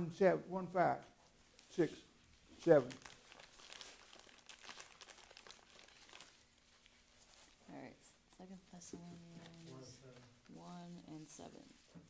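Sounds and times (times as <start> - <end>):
paper pages rustling: 2.4 - 7.6, 9.0 - 12.0.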